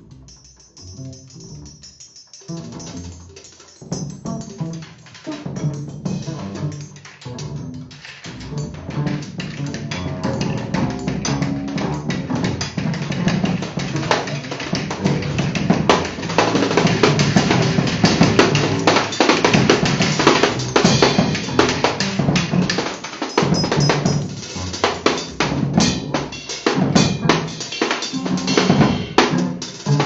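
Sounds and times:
double bass line: 0.0s - 1.8s, 2.5s - 3.3s, 3.9s - 22.9s, 23.5s - 27.5s, 28.2s - 30.0s
drum kit played busily: 0.0s - 30.0s.

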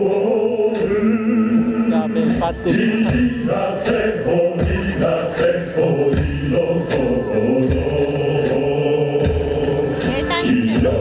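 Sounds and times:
choir chanting long notes: 0.0s - 11.0s
soundtrack music: 0.0s - 11.0s.

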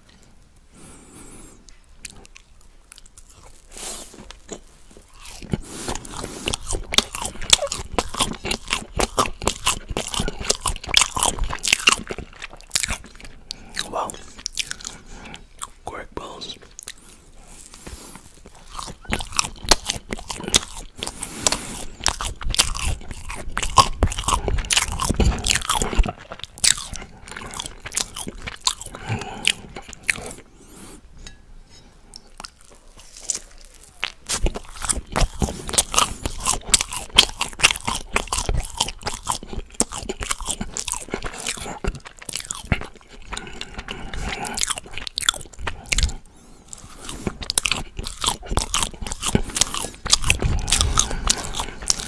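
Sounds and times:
wet mouth smacking while chewing: 4.0s - 15.8s, 16.5s - 30.5s, 32.1s - 52.0s.

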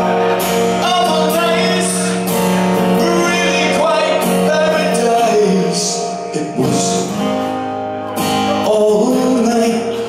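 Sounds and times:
amplified acoustic guitar strumming: 0.0s - 10.0s
man singing into a microphone: 0.7s - 7.4s, 8.5s - 10.0s.

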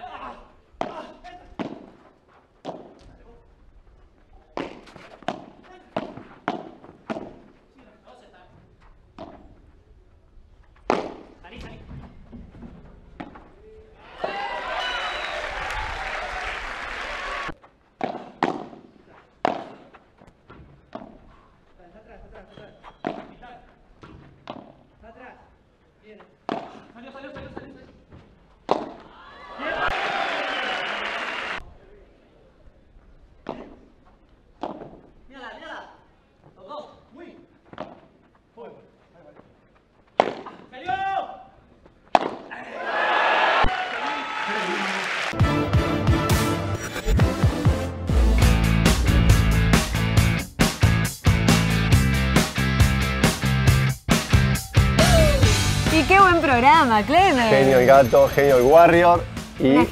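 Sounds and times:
paddles striking ball: 0.8s - 2.0s, 4.6s - 7.6s, 10.8s - 11.4s, 18.0s - 21.2s, 28.6s - 29.1s, 40.2s - 40.6s, 42.1s - 42.5s
crowd cheering and shouting: 14.0s - 17.6s, 29.1s - 31.6s, 42.6s - 45.4s, 54.5s - 57.4s.

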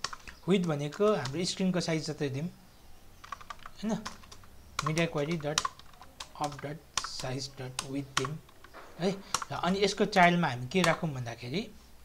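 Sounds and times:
typing on computer keyboard: 0.0s - 1.4s, 3.2s - 10.0s, 10.7s - 11.0s.

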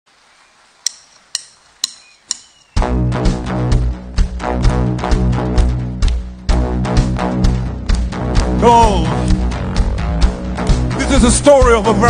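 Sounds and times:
drumstick count-in clicks: 0.8s - 2.6s.

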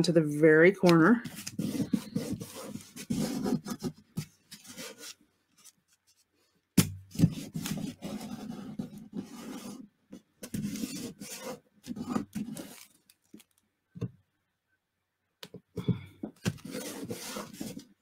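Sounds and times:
hands rubbing paper: 1.3s - 6.2s, 16.6s - 17.9s.

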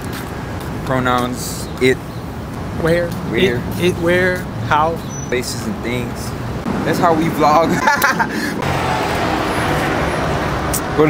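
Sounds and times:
street traffic hum: 0.0s - 11.0s
people laughing and talking: 7.1s - 8.6s.

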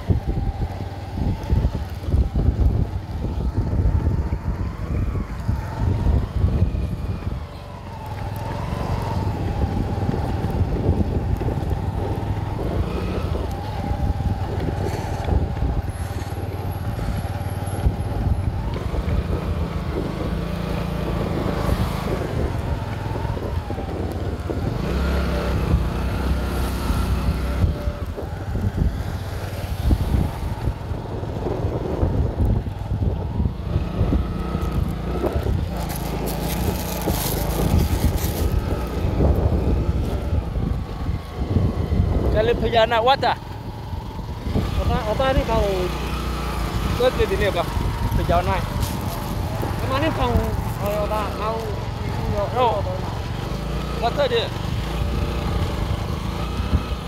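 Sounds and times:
vehicle engine and road rumble: 0.0s - 57.0s
wind buffeting microphone: 0.0s - 57.0s.

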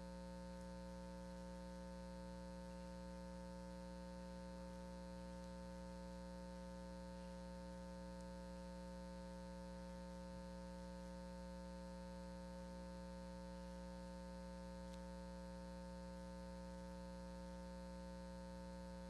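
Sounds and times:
faint mains hum: 0.0s - 19.0s.

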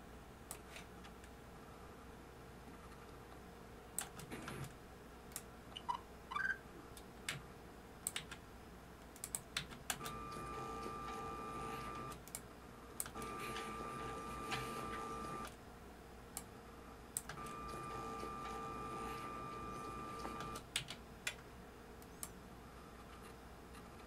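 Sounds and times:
keyboard keys clicking: 8.1s - 8.4s.

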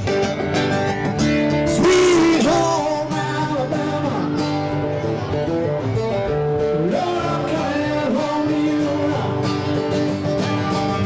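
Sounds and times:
guitar playing sliding notes: 0.0s - 11.0s.

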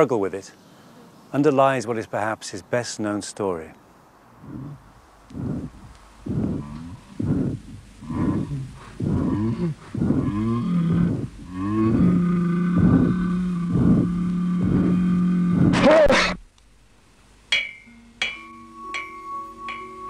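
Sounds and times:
man groaning: 4.4s - 4.8s, 5.4s - 16.4s.

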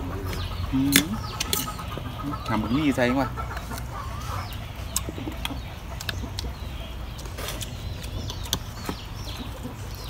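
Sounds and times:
chickens clucking: 0.0s - 10.0s.

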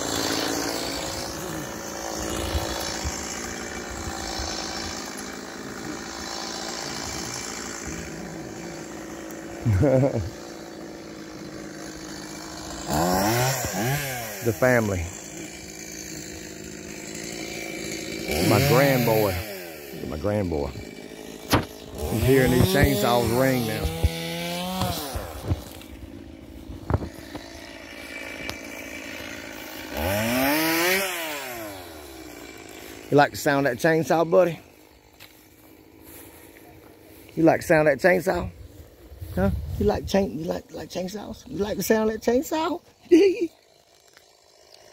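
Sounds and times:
distant chainsaw running: 0.0s - 44.9s.

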